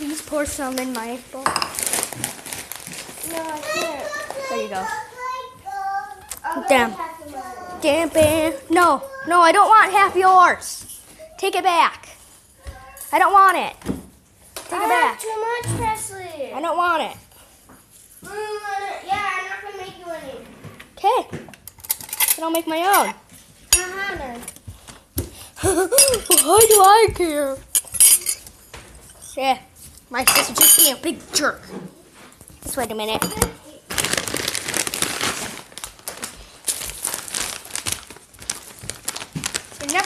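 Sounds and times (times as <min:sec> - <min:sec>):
dishware clinking: 0:01.4 - 0:01.8, 0:25.8 - 0:27.0, 0:27.7 - 0:29.4, 0:30.2 - 0:31.0, 0:33.1 - 0:33.6
children talking: 0:03.2 - 0:13.7, 0:14.6 - 0:17.2, 0:18.2 - 0:21.4, 0:22.4 - 0:24.6, 0:25.5 - 0:27.7, 0:32.7 - 0:34.0.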